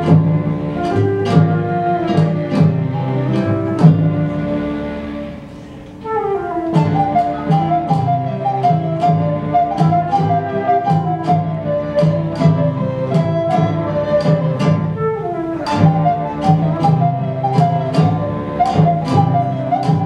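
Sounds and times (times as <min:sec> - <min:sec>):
sharp percussive strikes: 0:00.0 - 0:04.7, 0:06.6 - 0:20.0
flute melody: 0:00.0 - 0:20.0
guitar: 0:00.0 - 0:20.0.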